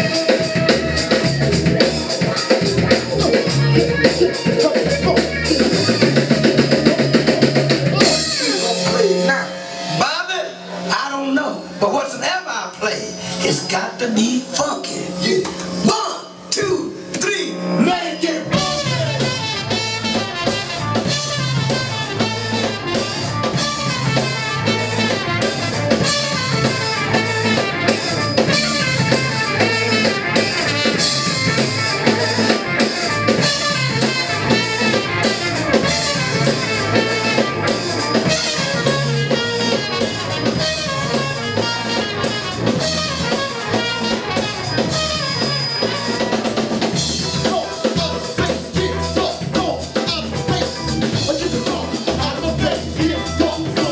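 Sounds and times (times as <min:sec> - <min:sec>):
drum kit beat: 0:00.0 - 0:10.7, 0:18.4 - 0:53.9
electric guitar: 0:00.0 - 0:10.9, 0:18.4 - 0:53.9
trumpet: 0:00.0 - 0:11.0, 0:17.6 - 0:53.9.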